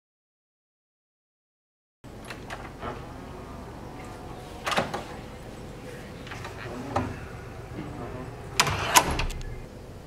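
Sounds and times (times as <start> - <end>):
door handle and latch rattling: 2.1 - 3.4, 4.6 - 5.2.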